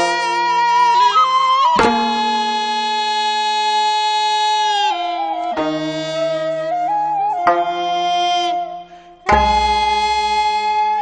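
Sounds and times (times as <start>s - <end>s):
court music on winds and strings: 4.9s - 11.0s.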